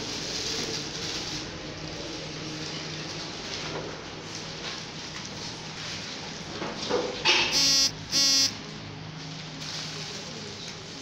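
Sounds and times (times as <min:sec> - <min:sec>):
short electronic buzzer tones: 0:07.5 - 0:08.6
brief noise: 0:07.6 - 0:08.6.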